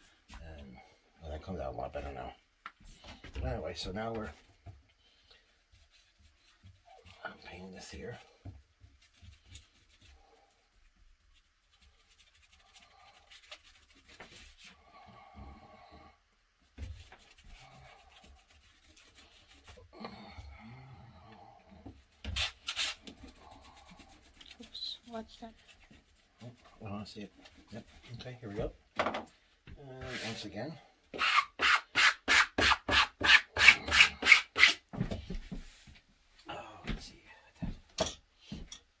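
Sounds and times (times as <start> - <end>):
paintbrush brushing on leather: 10.8 - 14.7, 16.8 - 19.8, 22.5 - 28.0
knock: 29.0 - 29.3.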